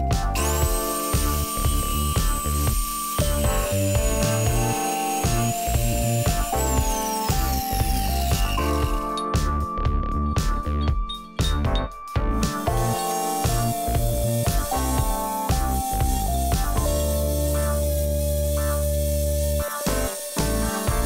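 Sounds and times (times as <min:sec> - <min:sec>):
loud background music: 0:00.0 - 0:21.0
angle grinder cutting metal: 0:00.3 - 0:09.7, 0:10.6 - 0:21.0.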